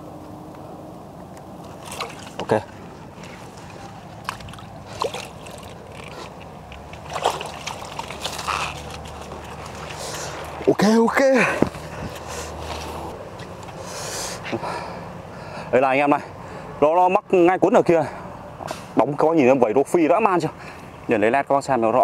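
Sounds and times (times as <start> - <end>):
leaves rustling: 1.5 - 14.1
shallow water sloshing: 1.6 - 10.8
short splashes: 1.6 - 10.8.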